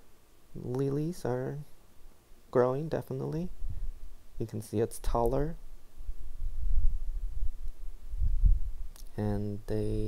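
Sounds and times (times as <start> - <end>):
low rumble on microphone: 3.4 - 10.0.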